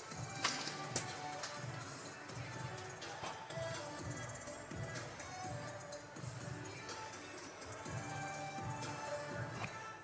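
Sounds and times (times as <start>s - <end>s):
music over sound system: 0.0s - 10.0s.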